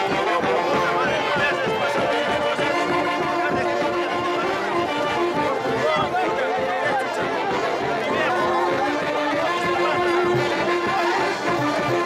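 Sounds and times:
band with saxophones playing: 0.0 - 12.0
people talking: 0.0 - 12.0.

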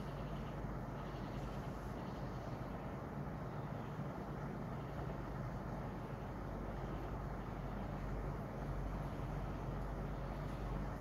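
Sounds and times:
room noise hum and hiss: 0.0 - 11.0.

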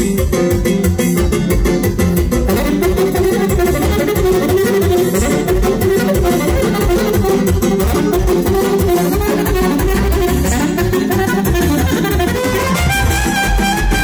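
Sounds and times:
electronic keyboard with beat and bass: 0.0 - 14.0
saxophone: 1.8 - 14.0
violin: 2.5 - 14.0.

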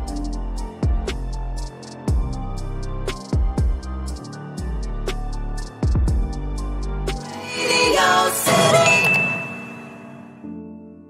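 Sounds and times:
music: 0.0 - 11.0
bright ding: 8.5 - 10.5.

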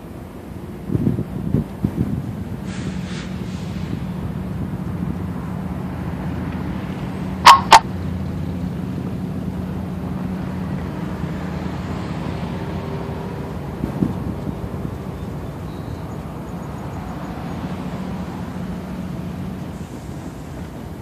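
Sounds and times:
diesel locomotive engine drone: 0.0 - 21.0
short loud sharp sounds: 7.4 - 7.8.

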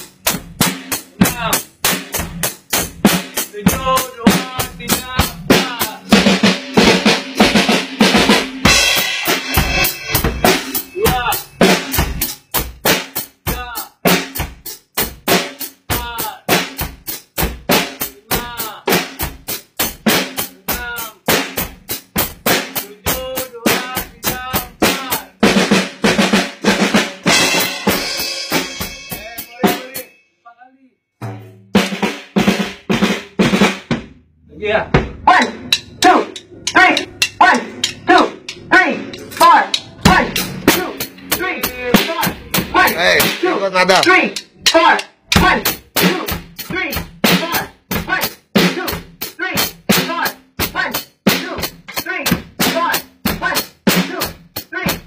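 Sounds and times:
drum kit played fast: 0.0 - 30.1, 31.2 - 55.0
pitched musical sounds: 8.0 - 12.6.

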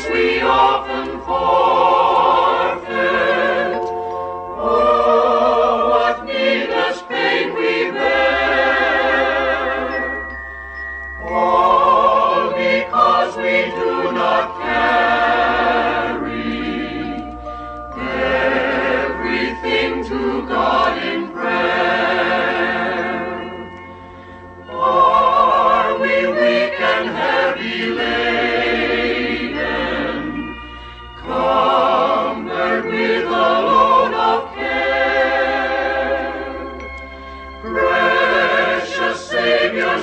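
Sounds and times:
choir singing a hymn: 0.0 - 10.3, 11.2 - 23.8, 24.6 - 37.0, 37.6 - 40.0
low sustained bass accompaniment: 0.0 - 27.0.

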